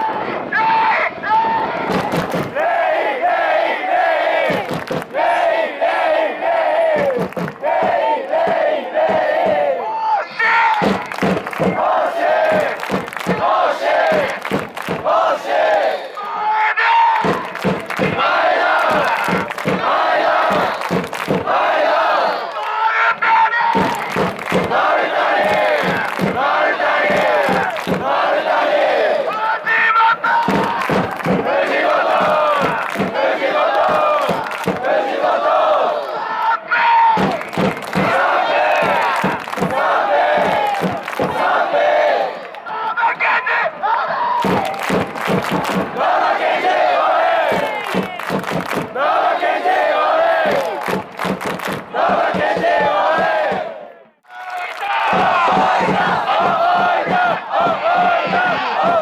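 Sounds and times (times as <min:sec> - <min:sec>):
crowd singing a chant: 0:01.6 - 0:09.9, 0:10.8 - 0:16.4, 0:17.2 - 0:22.9, 0:23.5 - 0:43.0, 0:43.8 - 0:59.0
rhythmic clapping: 0:01.9 - 0:02.6, 0:04.4 - 0:05.2, 0:06.9 - 0:09.7, 0:10.7 - 0:16.3, 0:17.2 - 0:22.8, 0:23.7 - 0:29.5, 0:30.2 - 0:35.8, 0:37.2 - 0:42.6, 0:44.4 - 0:53.7, 0:54.3 - 0:59.0.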